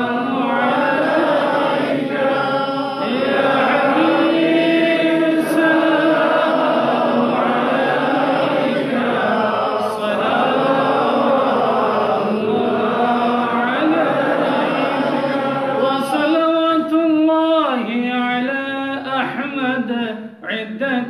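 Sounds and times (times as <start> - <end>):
men chanting in unison: 0.0 - 19.9.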